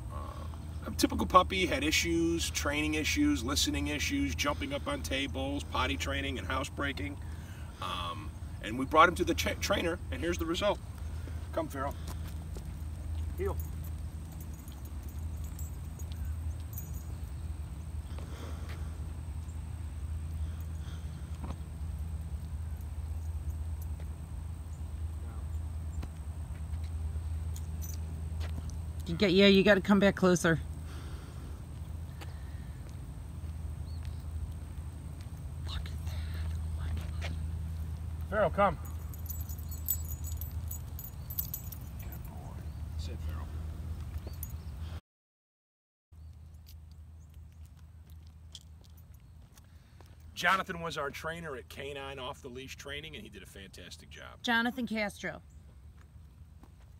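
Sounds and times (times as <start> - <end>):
low outdoor rumble: 0.0 - 45.0, 46.2 - 56.9
dog collar tags jingling: 12.2 - 17.5, 27.4 - 28.6, 37.7 - 42.8, 44.1 - 44.8, 47.5 - 49.5
man giving spoken command: 38.3 - 38.8.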